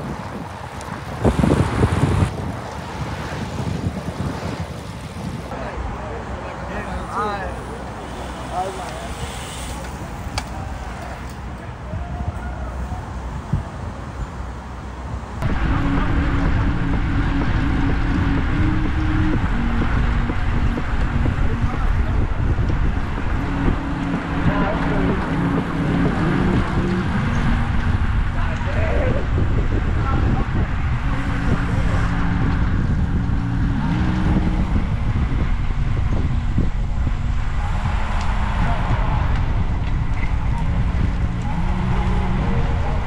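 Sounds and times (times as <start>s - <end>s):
wind buffeting microphone: 0.0s - 8.6s, 9.7s - 43.0s
bike road noise: 0.0s - 43.0s
cyclists riding past: 0.0s - 43.0s.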